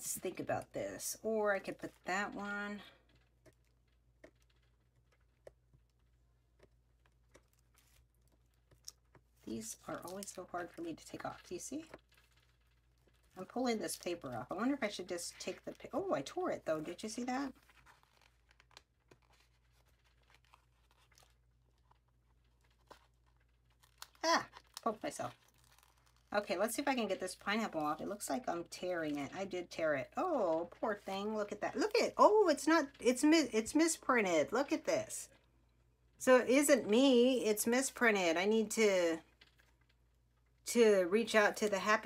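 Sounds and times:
sticker sheets rustling and peeling: 2.8 - 32.0.

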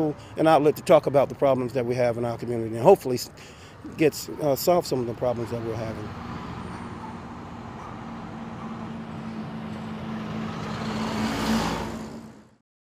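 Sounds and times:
vehicle passing by: 4.7 - 12.6.

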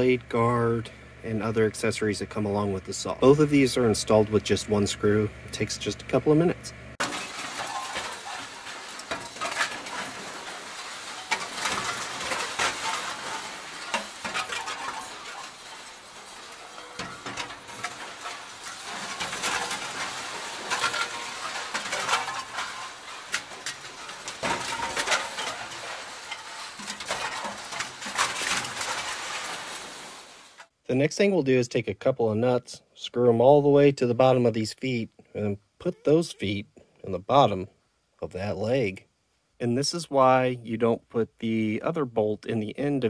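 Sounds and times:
metal tools clinking and knocking: 7.0 - 29.6.

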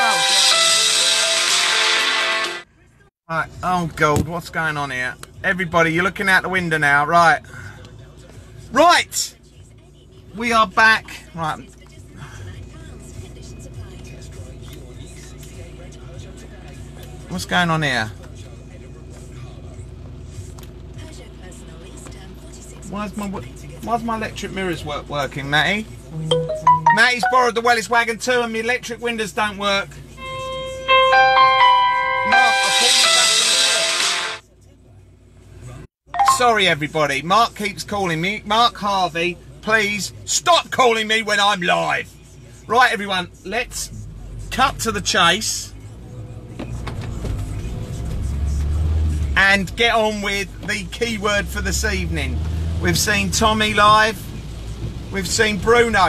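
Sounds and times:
vehicle rumble from inside cabin: 7.0 - 26.3, 41.8 - 56.0
phone ringtone piano melody: 26.3 - 27.6, 30.9 - 34.4, 36.2 - 36.6.

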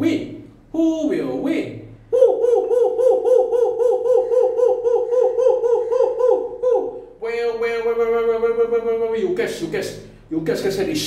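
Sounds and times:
man chanting owl-like hoots: 0.0 - 11.0.

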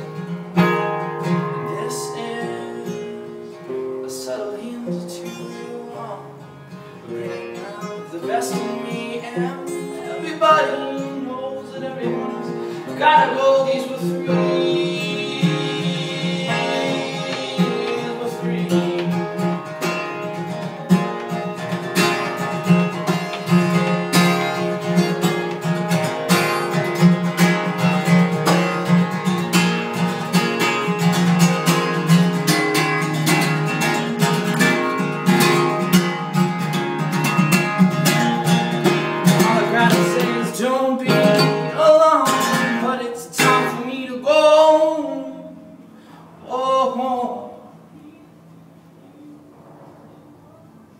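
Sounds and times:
person singing: 1.2 - 3.4, 7.1 - 19.6, 39.3 - 45.6
guitar strummed quickly: 12.1 - 43.8.

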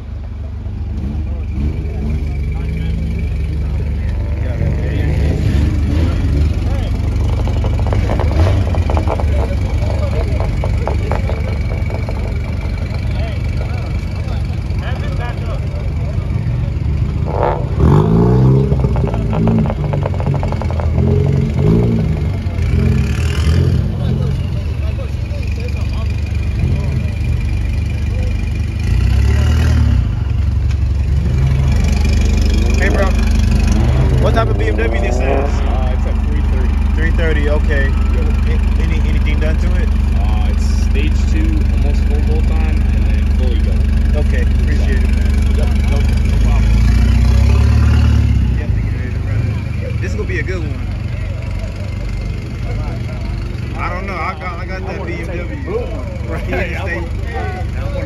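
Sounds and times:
car engines rumbling and revving: 0.0 - 58.0
people's voices: 0.0 - 58.0.

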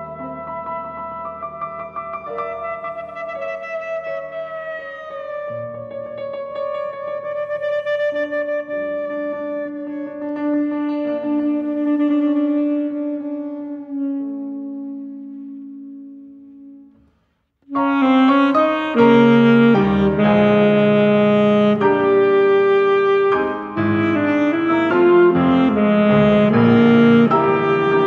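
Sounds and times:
piano chords: 0.0 - 28.0
saxophone: 0.0 - 28.0.

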